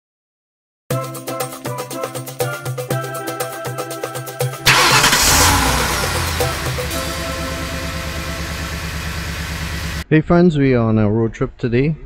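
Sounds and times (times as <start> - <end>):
music: 0.9 - 8.0
car engine starting and running: 4.6 - 10.0.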